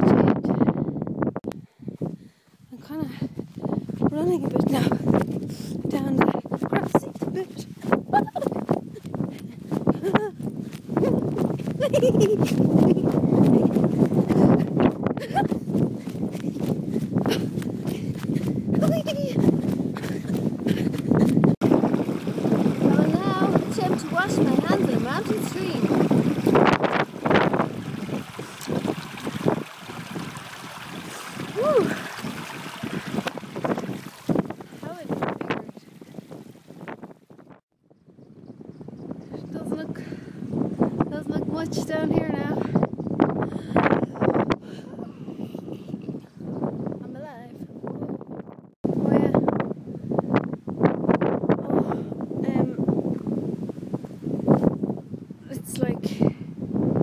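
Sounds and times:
wind buffeting microphone: 0.0s - 57.0s
woman's wordless vocal sounds: 31.5s - 32.2s.

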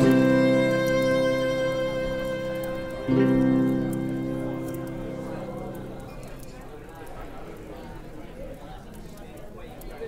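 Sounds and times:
folk tune chord: 0.0s - 6.4s
murmur of crowd chatter: 0.0s - 10.0s.

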